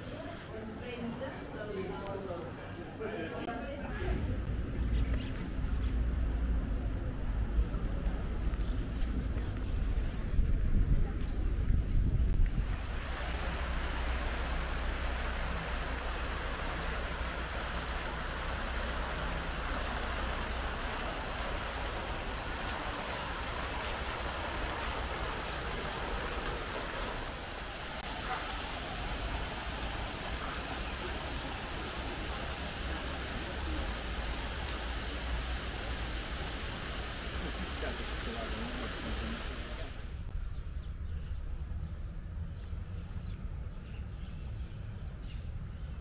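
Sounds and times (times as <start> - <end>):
fountain water splashing into pond: 12.5 - 40.2.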